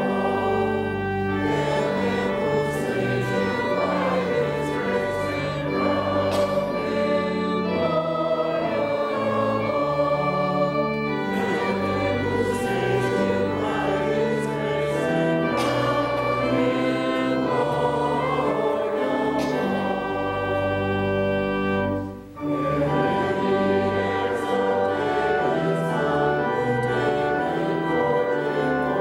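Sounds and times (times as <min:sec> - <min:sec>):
church choir singing: 0:00.0 - 0:29.0.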